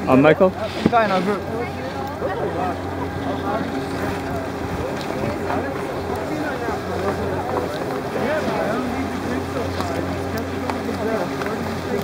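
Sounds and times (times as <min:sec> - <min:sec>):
distant indistinct voices: 0:00.0 - 0:12.0
low machine hum: 0:00.0 - 0:12.0.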